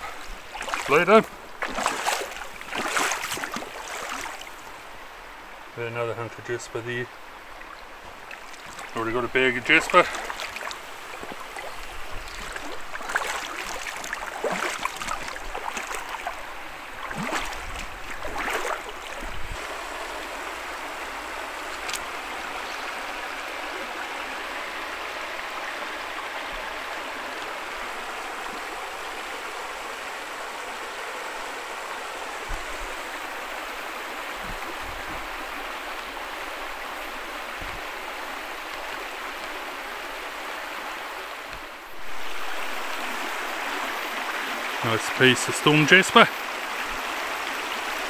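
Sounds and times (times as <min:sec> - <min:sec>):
stream running over stones: 0:00.0 - 0:48.0.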